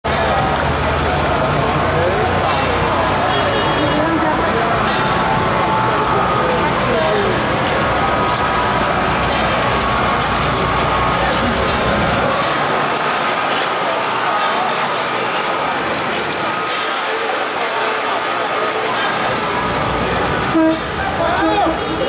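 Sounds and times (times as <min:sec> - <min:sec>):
crowd talking and calling out: 0:00.0 - 0:22.0
firecrackers crackling: 0:00.1 - 0:22.0.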